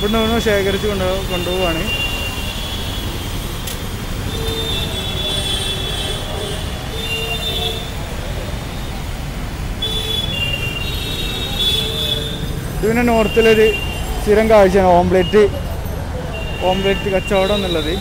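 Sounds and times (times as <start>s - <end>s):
low street rumble: 0.0s - 18.0s.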